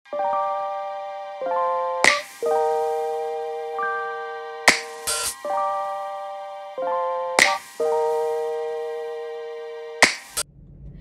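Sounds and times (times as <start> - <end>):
electronic sustained chords: 0.1 - 10.4.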